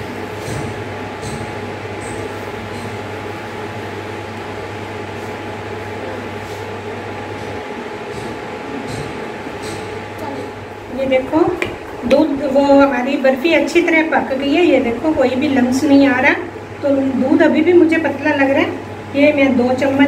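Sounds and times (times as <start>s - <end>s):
induction cooktop hum and fan: 0.0s - 20.0s.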